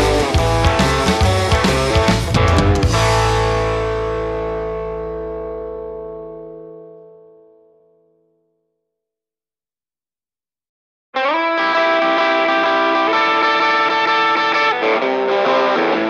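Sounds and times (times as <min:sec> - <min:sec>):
rock song with electric guitar: 0:00.0 - 0:07.3, 0:11.2 - 0:16.0.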